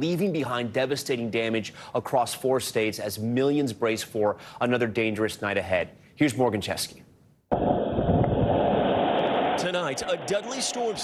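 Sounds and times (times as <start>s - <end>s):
rain battering: 7.9s - 10.8s.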